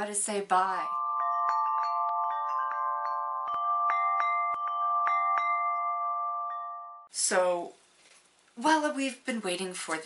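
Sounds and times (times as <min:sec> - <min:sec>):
chime music with held chord: 0:00.8 - 0:07.1.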